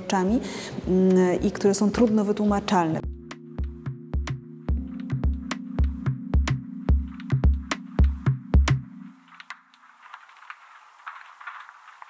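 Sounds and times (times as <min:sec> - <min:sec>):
faint crackling static: 0:00.0 - 0:12.0.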